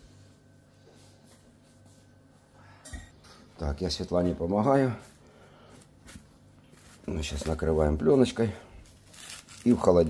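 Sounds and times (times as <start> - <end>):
plastic cling film rustling: 5.8 - 10.0
cling film crinkles: 8.8 - 10.0.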